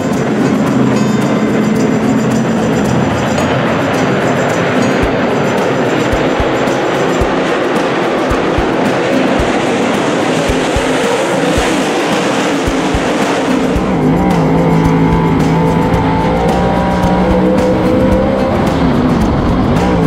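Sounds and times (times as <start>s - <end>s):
race car engine from cockpit: 0.0s - 20.0s
race car engines in a pack: 0.0s - 20.0s.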